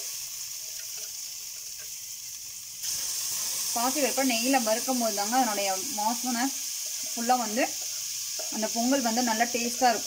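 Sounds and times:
lentils sizzling in hot ghee: 0:00.0 - 0:10.0.

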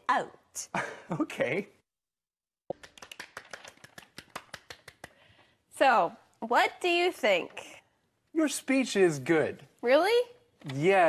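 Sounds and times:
people applauding: 0:02.7 - 0:05.2.

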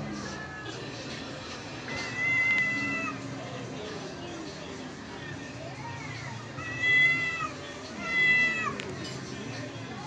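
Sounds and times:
cat yowling: 0:02.0 - 0:03.2, 0:06.2 - 0:08.8.

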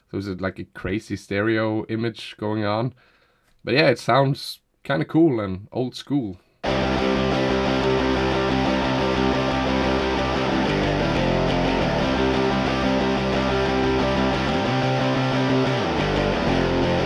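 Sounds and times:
bass guitar: 0:06.6 - 0:17.0
electric guitar: 0:06.6 - 0:17.0
punk rock song: 0:06.6 - 0:17.0.

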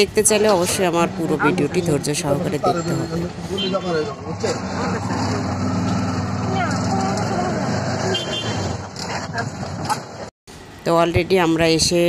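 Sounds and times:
voices: 0:00.0 - 0:08.3
auto-rickshaw engine running: 0:00.0 - 0:10.3.

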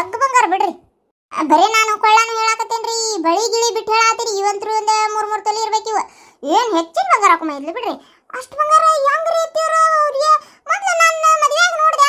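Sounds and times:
high-pitched cartoon voice: 0:00.0 - 0:12.0.

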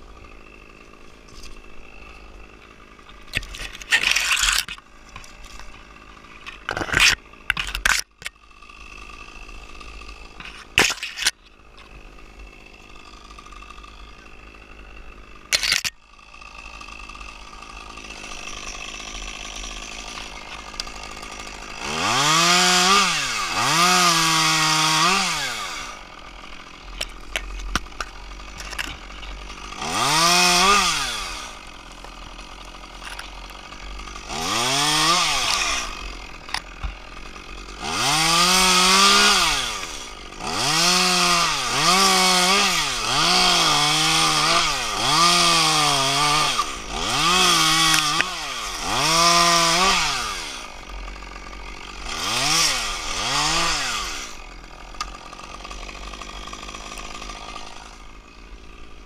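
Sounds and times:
chainsaw revving and cutting: 0:00.0 - 0:59.0.

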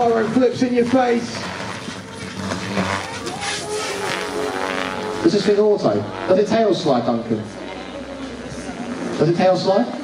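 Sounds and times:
radio-controlled helicopter whine: 0:00.0 - 0:10.0.

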